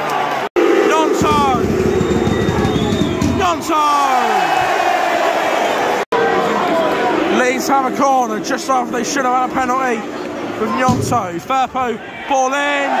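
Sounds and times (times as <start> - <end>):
stadium crowd singing and shouting: 0.0 - 13.0.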